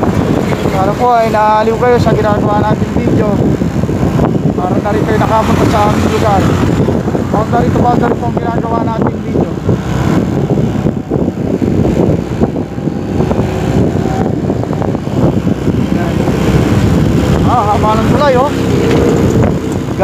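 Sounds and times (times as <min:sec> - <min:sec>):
motorcycle engine running: 0:00.0 - 0:20.0
wind buffeting microphone: 0:00.0 - 0:20.0.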